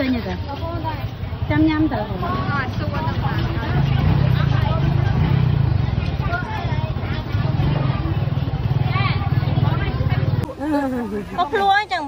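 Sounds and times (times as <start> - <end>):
motorbike engine running: 0.0 - 10.6
people talking: 0.0 - 12.0.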